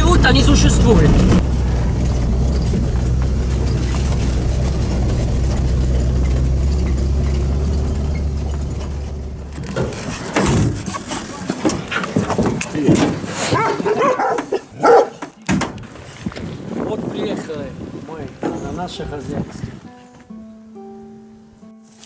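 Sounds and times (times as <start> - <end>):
vehicle engine droning: 0.0 - 11.4.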